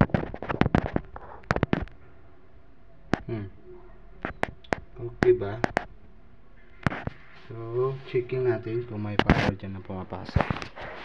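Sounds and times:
handling clicks and crackles: 0:00.0 - 0:02.0.

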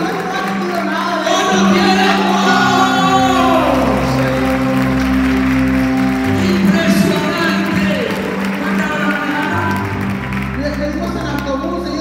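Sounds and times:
hand clapping: 0:00.0 - 0:11.9
held keyboard chords: 0:00.0 - 0:12.0
voices singing or calling: 0:01.2 - 0:09.9
low bass note: 0:01.4 - 0:10.8.

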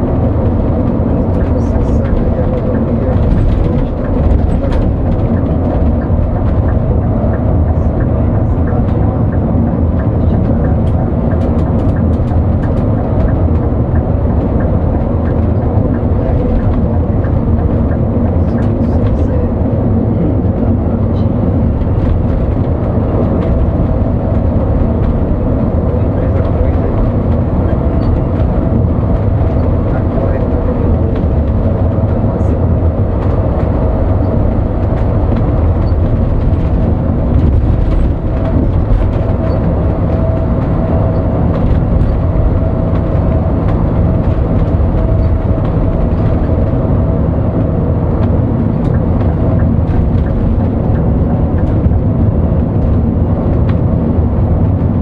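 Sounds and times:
bus engine and road noise: 0:00.0 - 0:55.0.

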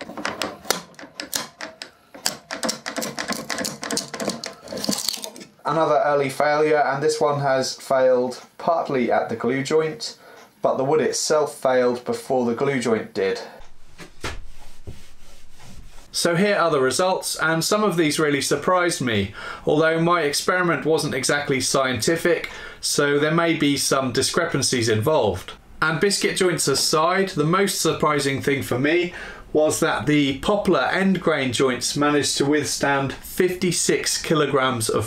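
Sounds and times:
whiteboard being wiped: 0:13.6 - 0:16.3.

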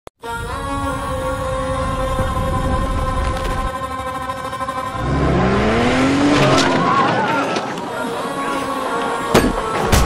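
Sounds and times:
held music drone: 0:00.2 - 0:10.0
engine revving: 0:04.5 - 0:07.8
tyres squealing: 0:06.1 - 0:09.8.

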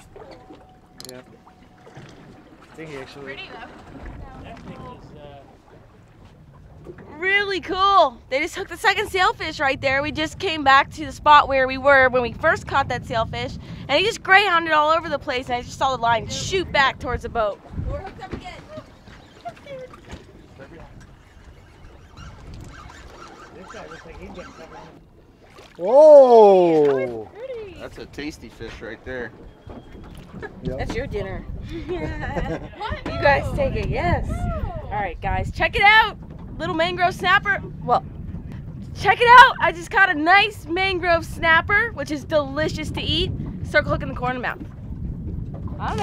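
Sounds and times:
low rumble of wind and water: 0:00.0 - 0:46.0.

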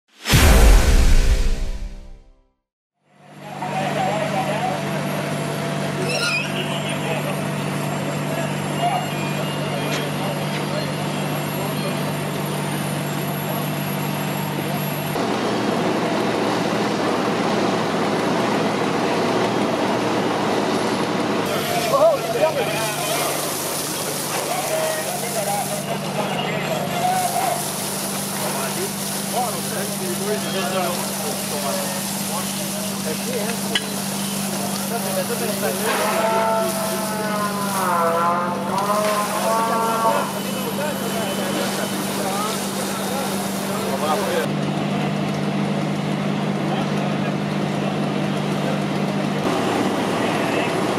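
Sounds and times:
fire engine pump droning: 0:03.1 - 0:50.9.

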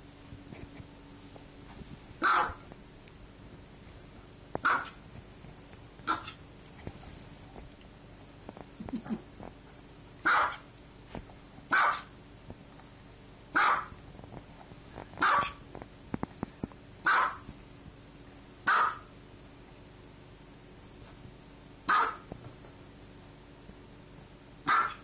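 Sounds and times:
small dog barking: 0:02.2 - 0:02.6, 0:04.6 - 0:05.0, 0:06.0 - 0:06.4, 0:10.2 - 0:10.7, 0:11.7 - 0:12.2, 0:13.5 - 0:14.0, 0:15.2 - 0:15.6, 0:17.0 - 0:17.5, 0:18.6 - 0:19.1, 0:21.9 - 0:22.3, 0:24.6 - 0:25.0.

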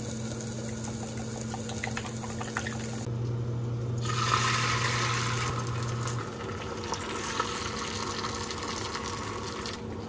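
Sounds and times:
egg sizzling in a pan: 0:00.0 - 0:03.1, 0:04.0 - 0:09.9
low steady hum: 0:00.0 - 0:10.0.

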